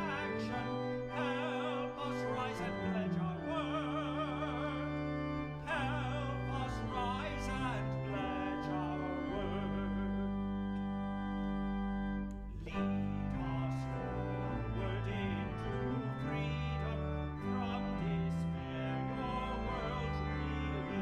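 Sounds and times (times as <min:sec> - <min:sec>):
organ chords: 0:00.0 - 0:21.0
person singing a hymn: 0:00.0 - 0:21.0.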